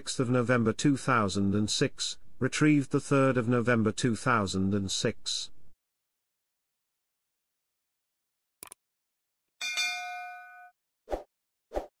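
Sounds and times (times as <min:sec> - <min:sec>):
notification bell ding: 0:09.6 - 0:10.7.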